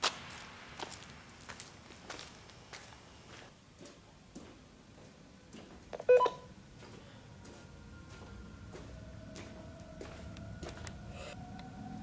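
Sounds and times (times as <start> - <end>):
low rumble: 6.6 - 12.0
faint tone rising in pitch: 7.2 - 12.0.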